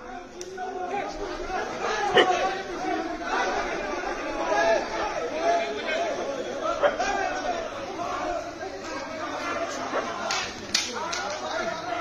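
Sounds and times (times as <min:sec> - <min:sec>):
crowd of men talking and shouting: 0:00.0 - 0:12.0.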